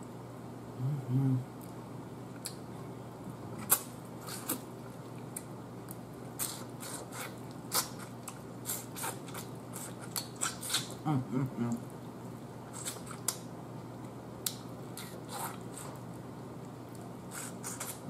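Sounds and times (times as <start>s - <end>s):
person humming: 0.8s - 1.6s, 3.4s - 3.8s, 11.0s - 11.9s.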